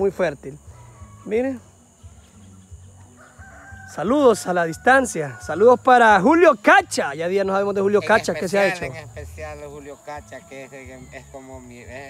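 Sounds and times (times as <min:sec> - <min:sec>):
rooster crowing: 0:00.6 - 0:01.6, 0:02.8 - 0:05.9.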